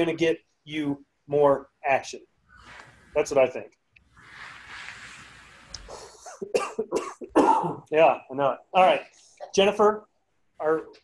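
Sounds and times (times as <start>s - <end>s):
soft breathy hiss: 2.4s - 6.5s
man coughing: 6.3s - 7.9s.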